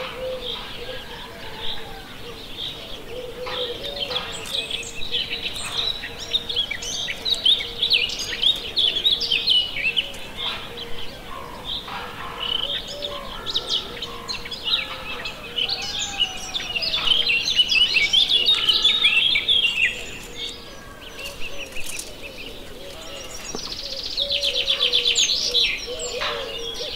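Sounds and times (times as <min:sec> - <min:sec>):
birds chirping and twittering: 0:00.0 - 0:26.9.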